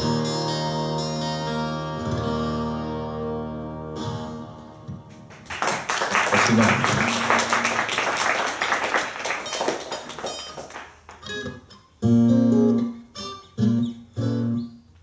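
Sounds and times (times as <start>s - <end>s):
plucked guitar notes: 0.0s - 5.3s, 9.6s - 14.9s
acoustic guitar strumming: 0.0s - 5.4s, 9.3s - 14.9s.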